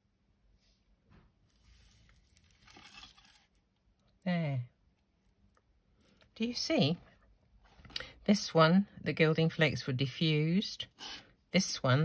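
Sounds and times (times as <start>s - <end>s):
paper rustling under fingertips: 1.4s - 3.6s.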